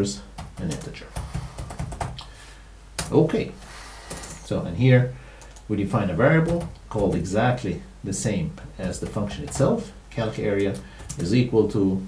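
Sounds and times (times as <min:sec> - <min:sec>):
typing on computer keyboard: 0:00.4 - 0:02.2, 0:06.4 - 0:07.2, 0:08.8 - 0:09.8, 0:10.5 - 0:11.3.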